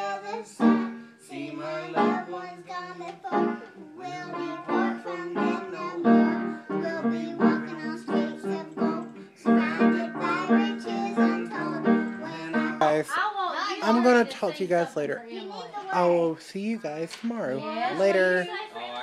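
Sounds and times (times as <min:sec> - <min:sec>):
girl singing: 0:00.0 - 0:14.6.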